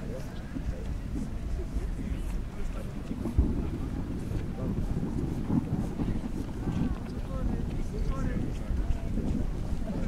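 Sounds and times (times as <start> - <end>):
distant people talking: 0.0 - 10.0
wind blowing on microphone: 0.0 - 10.0.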